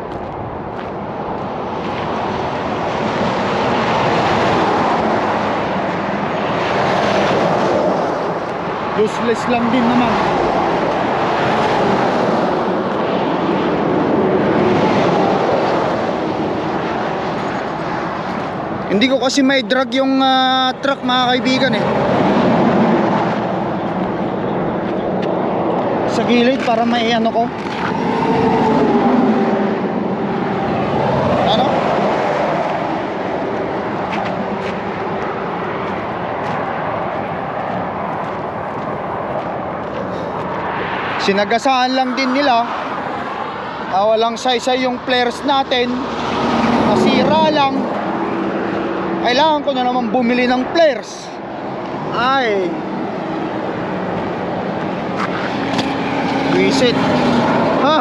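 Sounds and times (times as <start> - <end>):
trucks passing on highway: 0.0 - 58.0.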